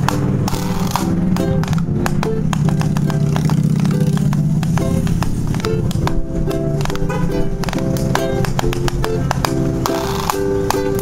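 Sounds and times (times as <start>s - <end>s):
ukulele plucked and strummed: 0.0s - 11.0s.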